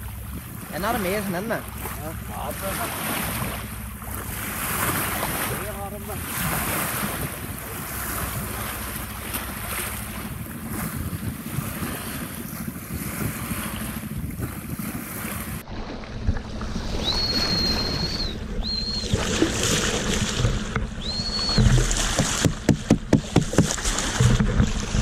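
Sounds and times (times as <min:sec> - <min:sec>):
bow wave splashing along hull: 0:00.0 - 0:25.0
water washing at surface: 0:00.0 - 0:25.0
wind buffeting microphone: 0:00.0 - 0:25.0
high steady whistle: 0:16.9 - 0:19.2, 0:21.0 - 0:21.8.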